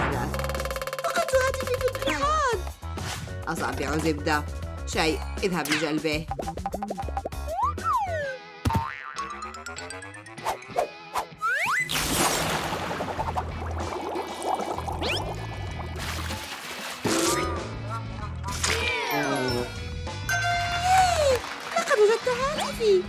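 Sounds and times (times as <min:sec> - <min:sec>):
upbeat background music: 0:00.0 - 0:23.0.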